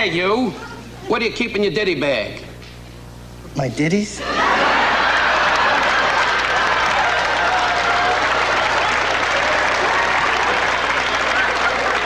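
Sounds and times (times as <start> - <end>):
audience applauding: 4.4 - 12.0.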